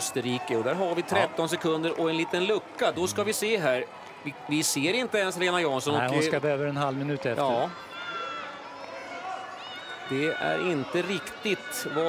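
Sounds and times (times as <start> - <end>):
outdoor crowd murmur: 0.0 - 12.0
spectators shouting: 0.0 - 12.0.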